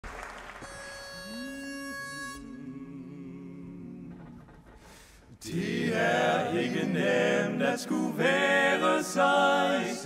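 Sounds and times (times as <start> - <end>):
pitch pipe note: 0.7 - 3.1.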